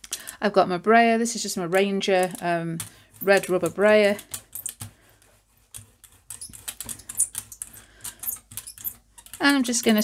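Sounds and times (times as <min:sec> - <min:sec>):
roller crackling through sticky paint: 0:00.0 - 0:10.0.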